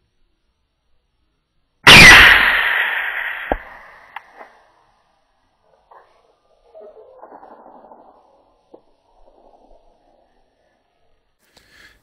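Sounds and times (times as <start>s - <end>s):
rifle shot: 1.9s - 4.2s
sharp knock: 1.9s - 4.2s.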